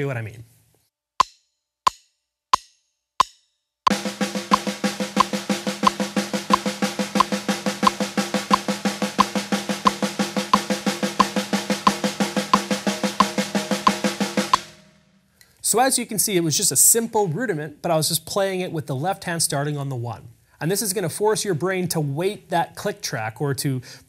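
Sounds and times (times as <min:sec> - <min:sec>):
snare drum roll: 0:03.9 - 0:14.9
metronome clicking: 0:04.5 - 0:14.7.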